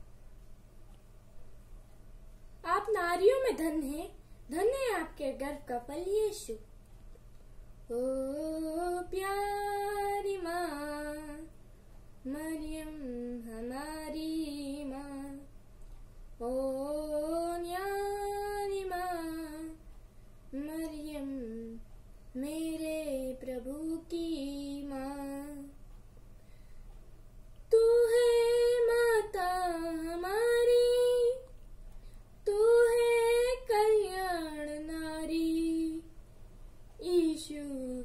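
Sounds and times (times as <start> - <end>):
faint low room hum: 0.0 - 38.0
boy singing a hymn: 7.9 - 11.6, 12.2 - 15.5, 16.4 - 19.8, 20.5 - 25.8, 27.7 - 31.5, 32.4 - 36.1, 37.0 - 38.0.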